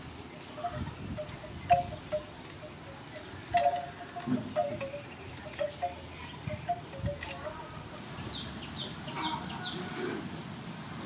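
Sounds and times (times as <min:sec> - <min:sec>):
soft chime-like notes: 0:00.6 - 0:08.2.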